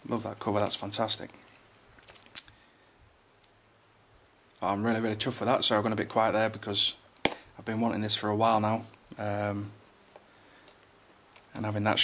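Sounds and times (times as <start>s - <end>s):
plastic wrap clicks and crinkles: 1.9s - 2.6s.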